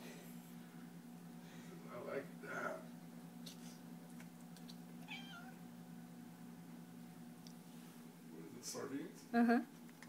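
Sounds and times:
cat meowing: 5.0s - 5.6s.

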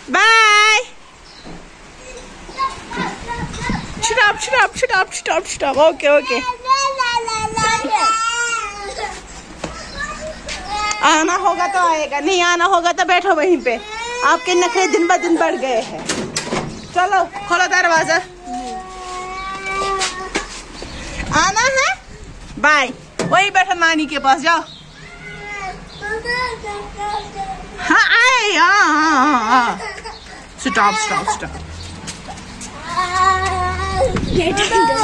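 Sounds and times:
small child calling and chattering: 1.9s - 4.7s, 6.0s - 12.2s, 13.7s - 15.9s, 17.3s - 22.2s, 24.9s - 28.1s, 29.0s - 35.0s
low rumble: 31.4s - 35.0s.

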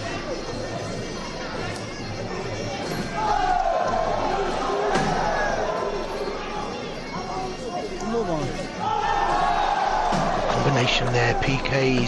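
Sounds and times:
crowd shouting: 2.8s - 7.4s, 8.2s - 12.0s.

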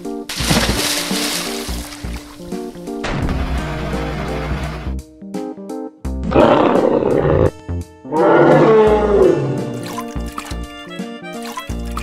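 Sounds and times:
light background music: 0.0s - 12.0s
dinosaur roar: 6.2s - 9.8s.

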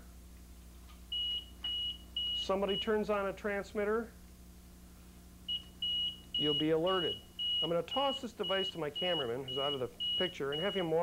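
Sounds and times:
high steady alert beep: 1.1s - 3.0s, 5.5s - 11.0s.

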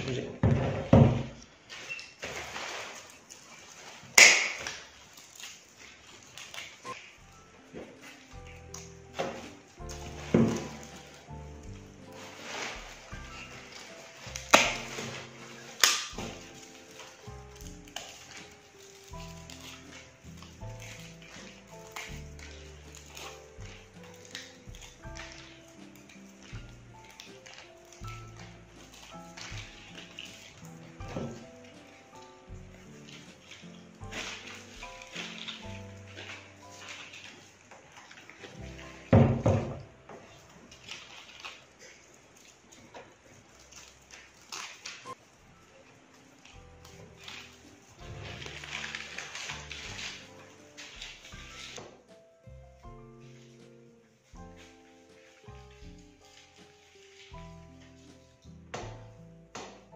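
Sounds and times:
fir branches rustling and knocking: 0.0s - 59.9s
soft background music: 0.0s - 59.9s.

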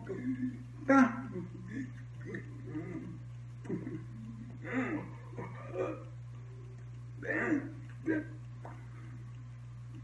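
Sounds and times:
man humming: 0.0s - 6.2s, 7.2s - 9.2s
steady low hum: 0.0s - 10.0s.

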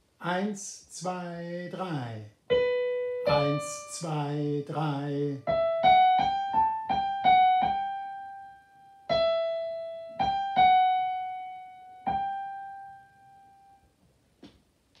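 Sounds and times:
digital piano melody: 2.5s - 14.0s.

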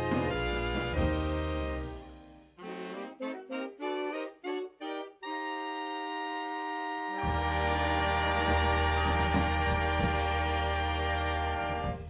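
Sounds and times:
saxophones and clarinet playing: 0.0s - 12.0s.

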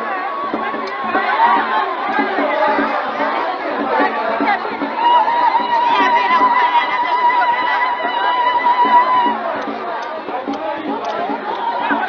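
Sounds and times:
crowd singing and shouting: 0.0s - 12.0s.

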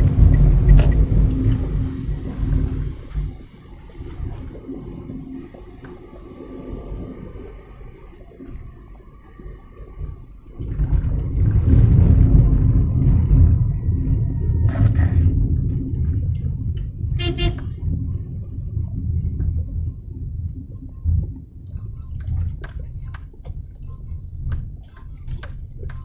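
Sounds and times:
car interior rumble: 0.0s - 26.0s
vehicle horn toots: 17.2s - 17.8s.

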